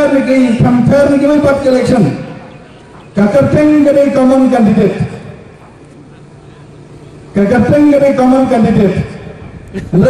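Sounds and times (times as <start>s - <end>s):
man speaking over loudspeaker: 0.0s - 5.4s, 6.1s - 10.0s
low hum: 0.0s - 10.0s.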